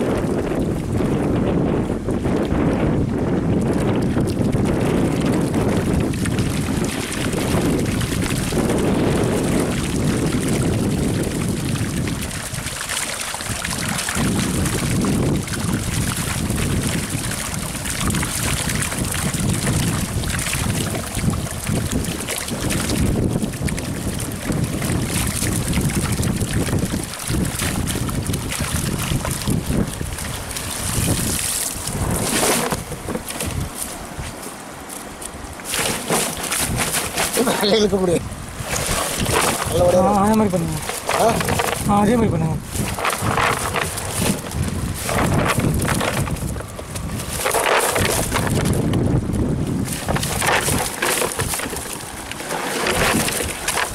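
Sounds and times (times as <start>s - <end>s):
water splashing and sloshing: 0.0s - 53.9s
wind buffeting microphone: 0.0s - 53.9s
net dragged through water: 3.8s - 34.4s, 35.6s - 53.9s
prawns rustling in net: 35.6s - 37.8s, 38.6s - 42.0s, 42.6s - 48.8s, 49.8s - 53.9s.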